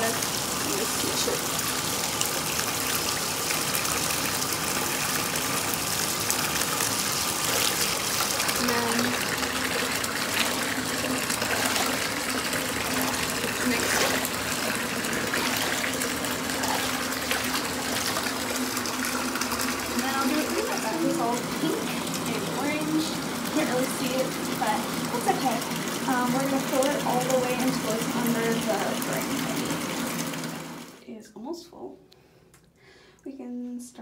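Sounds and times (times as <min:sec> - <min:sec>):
bath tap running into bathtub: 0:00.0 - 0:31.0.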